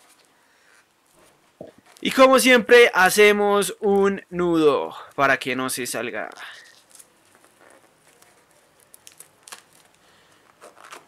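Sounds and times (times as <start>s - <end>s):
balloon rubber rubbing: 6.3s - 8.5s, 10.5s - 11.0s.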